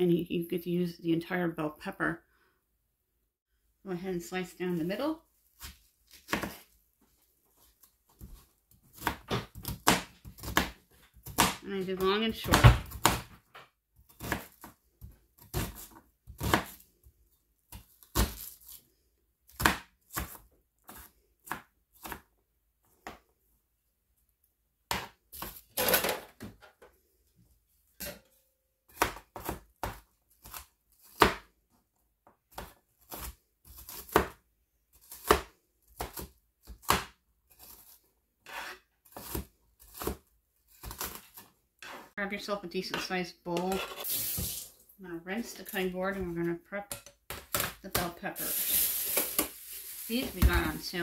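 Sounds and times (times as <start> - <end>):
knife chopping on plastic board: 5.6 - 6.6, 8.2 - 16.8, 19.5 - 22.3, 24.9 - 25.6, 28.9 - 31.5, 32.5 - 34.4, 35.0 - 42.0.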